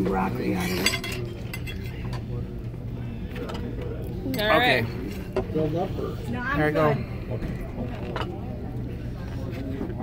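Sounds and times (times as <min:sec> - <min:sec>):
faint voices: 0:00.0 - 0:10.0
steady low hum: 0:00.0 - 0:10.0
tableware clinking: 0:00.4 - 0:02.2.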